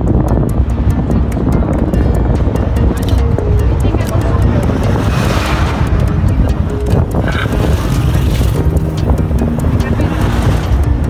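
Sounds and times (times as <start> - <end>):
low rumble: 0.0 - 11.0
music with beat and singing: 0.0 - 11.0.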